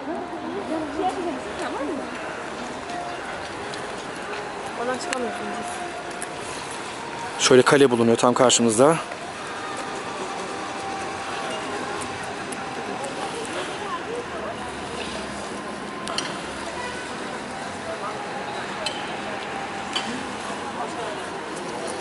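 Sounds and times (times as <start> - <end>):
distant voices: 0.0 - 22.0.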